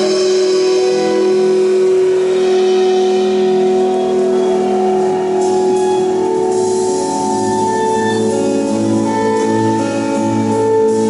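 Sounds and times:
cymbal wash: 0.0 - 11.0
jazz trio long held tones: 0.0 - 11.0.

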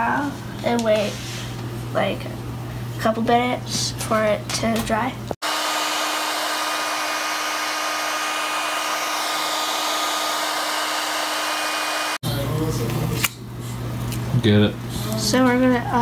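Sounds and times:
blow dryer whooshing and whining: 5.4 - 12.2.

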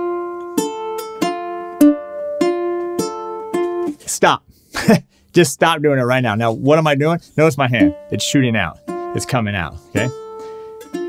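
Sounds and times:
ukulele fingerpicked arpeggio: 0.0 - 4.0, 7.8 - 11.0.

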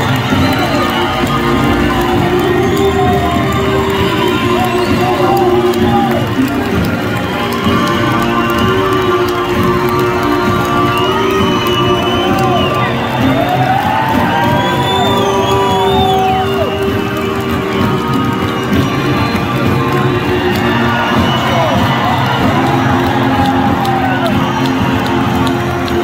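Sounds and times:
crowd cheering and whistling: 0.0 - 26.0
long rising and falling whistles: 14.4 - 16.7.

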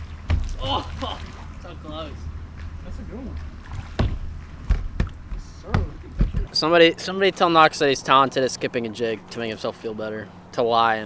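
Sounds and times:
fish thumping against boat: 3.8 - 6.5.

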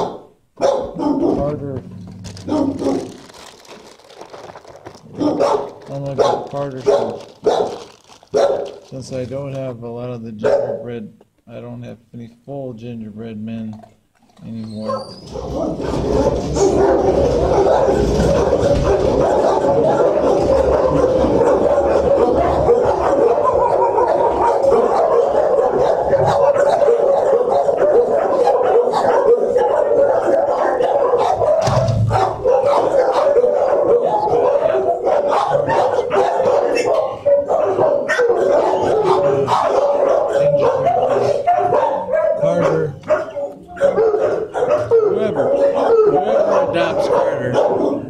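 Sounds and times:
many dogs barking: 0.0 - 3.7, 5.0 - 9.0, 10.4 - 11.0, 14.8 - 48.0.

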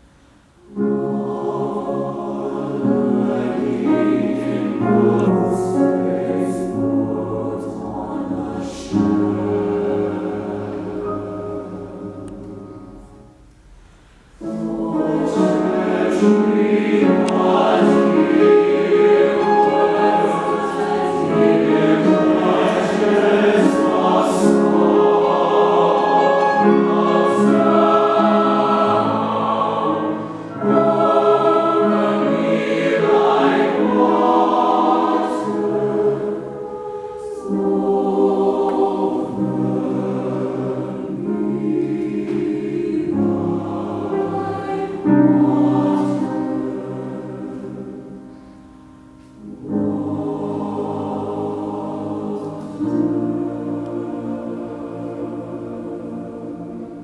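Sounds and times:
young mixed choir singing: 0.6 - 13.4, 14.4 - 57.0.

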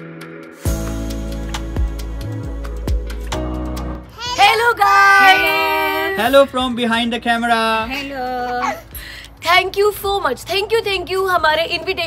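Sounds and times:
woman and girl calling sing-song greeting: 4.2 - 6.4.

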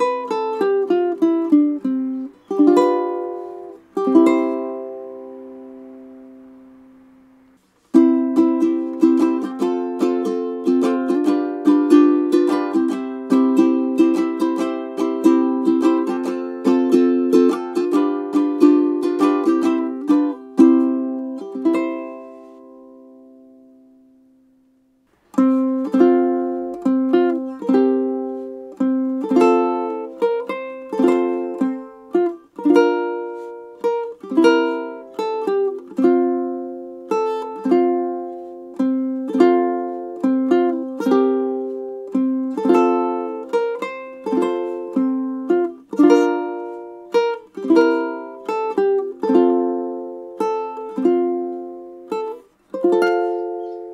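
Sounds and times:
ukulele plucked notes and chords: 0.0 - 53.9.

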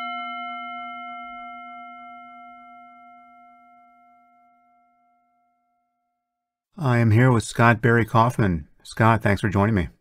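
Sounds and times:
struck bell ringing: 0.0 - 5.1.

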